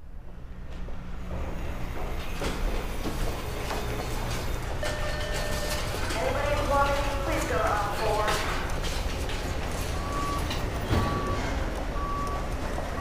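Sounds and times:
indistinct voices: 6.1s - 8.8s.

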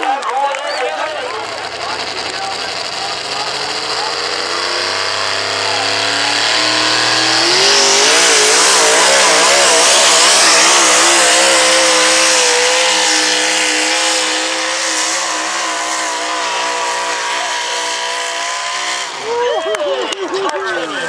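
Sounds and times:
truck engine at full throttle: 0.0s - 21.0s.

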